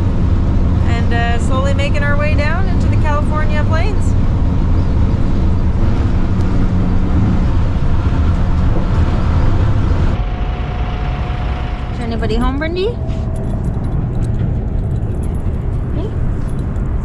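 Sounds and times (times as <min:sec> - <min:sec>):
bus engine and road rumble: 0:00.0 - 0:17.0.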